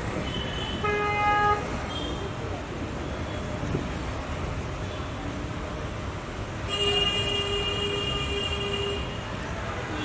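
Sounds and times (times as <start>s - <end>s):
street traffic: 0.0s - 10.0s.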